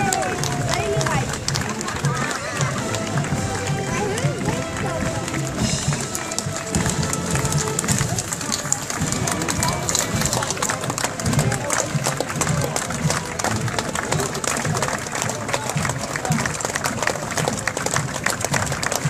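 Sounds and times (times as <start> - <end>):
parade music with low beat: 0.0 - 16.4
onlookers talking: 0.0 - 19.0.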